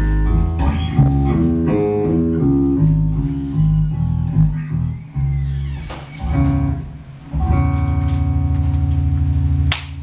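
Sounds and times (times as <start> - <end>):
electric bass guitar sustained note: 0.0 - 10.0.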